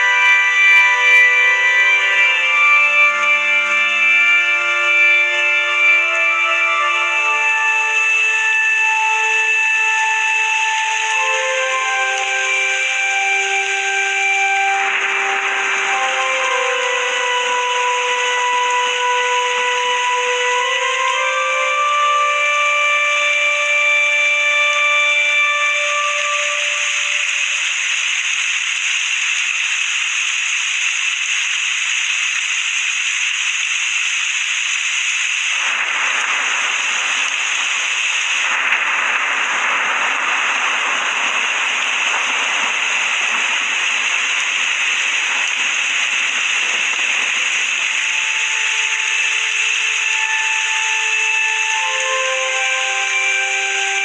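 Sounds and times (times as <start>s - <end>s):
slow held background music: 0.0s - 27.6s
steady static hiss: 0.0s - 54.0s.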